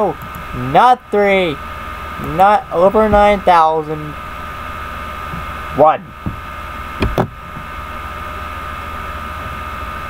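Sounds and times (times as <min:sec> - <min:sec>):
electrical hum: 0:00.0 - 0:10.0
high whine: 0:00.0 - 0:10.0.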